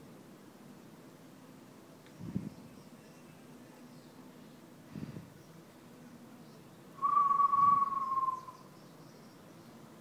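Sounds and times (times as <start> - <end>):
person's high whistle-like tone: 7.0 - 8.5.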